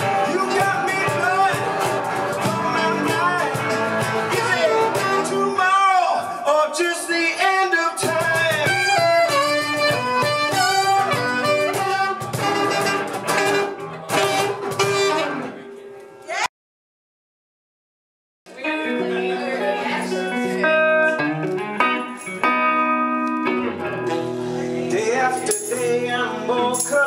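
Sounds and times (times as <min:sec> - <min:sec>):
percussion: 0:00.0 - 0:05.3, 0:08.0 - 0:15.2, 0:21.4 - 0:22.7, 0:25.0 - 0:27.0
strummed acoustic guitar: 0:00.0 - 0:05.6, 0:08.0 - 0:15.6
electric guitar: 0:00.0 - 0:06.5, 0:07.1 - 0:16.4, 0:18.5 - 0:27.0
man singing: 0:00.0 - 0:12.1, 0:24.3 - 0:27.0.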